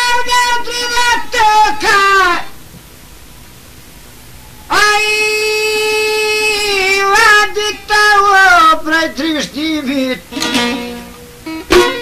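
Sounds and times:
man singing folk song: 0.0 - 2.5, 4.7 - 11.0
faint hiss: 0.0 - 12.0.

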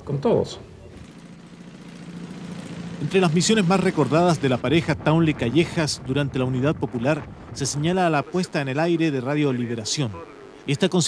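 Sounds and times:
car engine running: 0.9 - 10.2.

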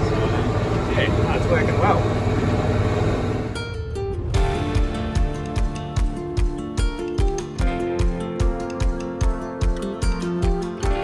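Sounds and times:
tractor engine running: 0.0 - 8.1
acoustic guitar music: 3.4 - 11.0.

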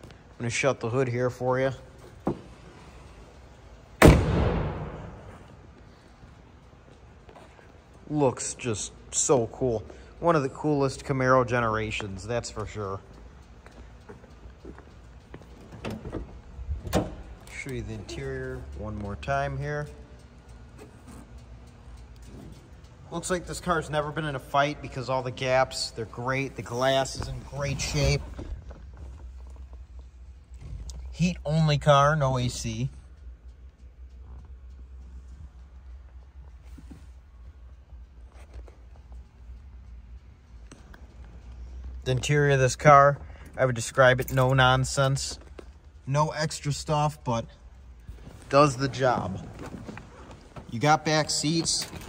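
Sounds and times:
steady low hum: 0.0 - 52.0
car hood slamming shut: 4.0 - 5.0.

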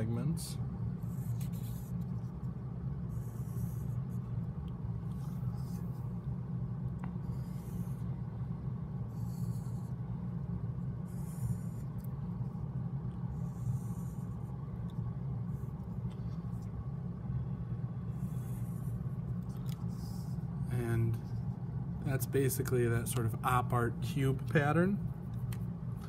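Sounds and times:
steady low hum: 0.0 - 26.0
marker scratching on paper: 1.0 - 2.4, 3.0 - 4.3, 5.0 - 6.3, 7.1 - 8.1, 9.1 - 10.0, 11.0 - 12.6.

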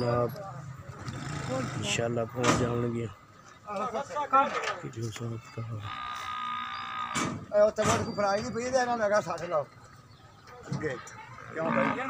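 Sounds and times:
water buffalo calling: 5.5 - 7.3, 11.1 - 12.0.

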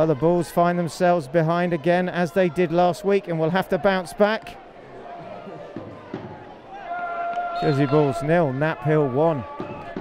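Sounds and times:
faint voices of players and spectators: 0.0 - 10.0.

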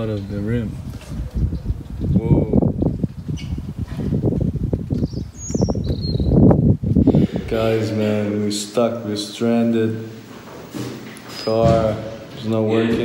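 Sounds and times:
wind and rain on microphone: 0.0 - 8.0.

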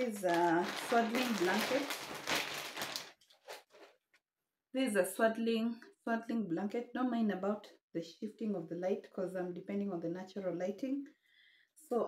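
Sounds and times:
plastic packaging crinkling: 0.0 - 4.0.

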